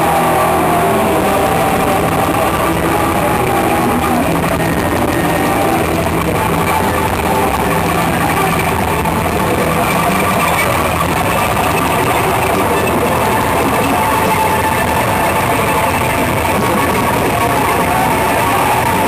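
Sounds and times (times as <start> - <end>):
distorted electric guitars: 0.0 - 19.0.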